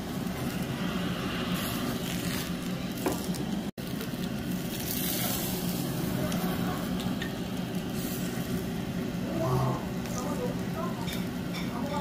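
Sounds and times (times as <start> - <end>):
meat sizzling on grill: 0.0 - 12.0.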